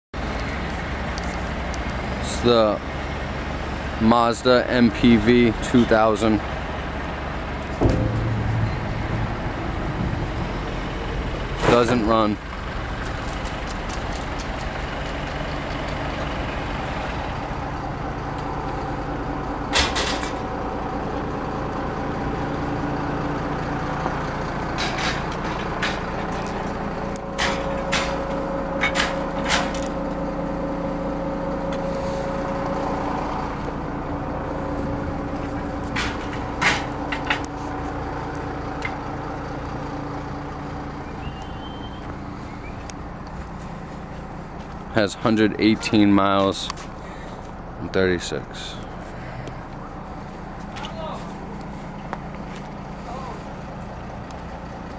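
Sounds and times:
vehicle engine running: 0:00.2 - 0:54.9
sharp clicks and knocks: 0:07.7 - 0:10.8.

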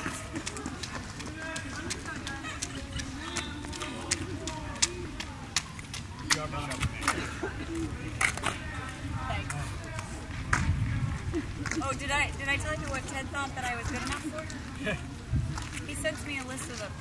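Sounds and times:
quiet indistinct conversation: 0:00.0 - 0:17.0.

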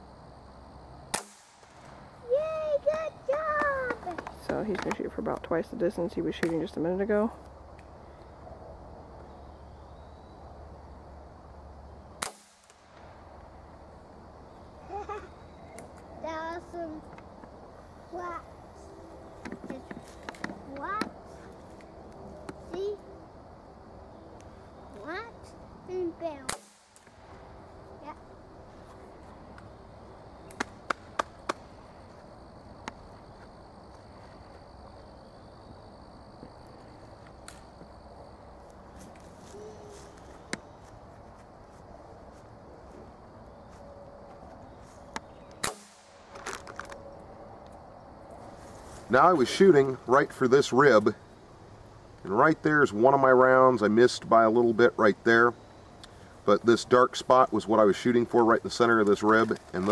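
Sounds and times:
air rifle shots: 0:01.1 - 0:01.9, 0:12.2 - 0:13.0, 0:26.5 - 0:27.2, 0:45.6 - 0:46.4.

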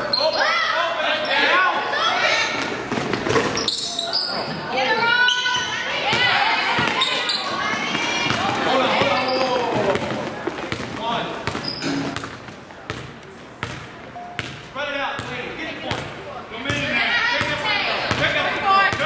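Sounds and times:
people shouting in a hall: 0:00.0 - 0:02.6, 0:04.8 - 0:10.0
basketball bouncing on hardwood floor: 0:08.2 - 0:14.6.

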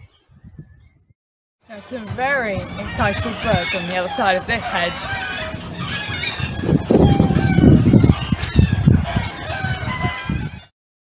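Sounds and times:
chickens clucking: 0:01.8 - 0:10.7
loud low microphone rumble: 0:02.1 - 0:10.7.

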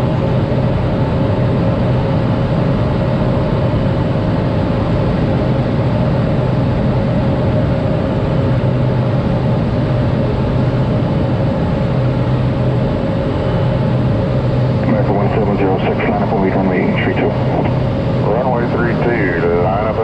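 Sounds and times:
turboprop engine and propeller: 0:00.0 - 0:20.0.

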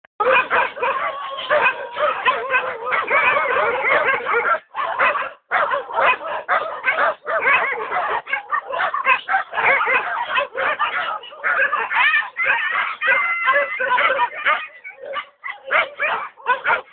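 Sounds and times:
pack of dogs barking: 0:00.2 - 0:16.9.

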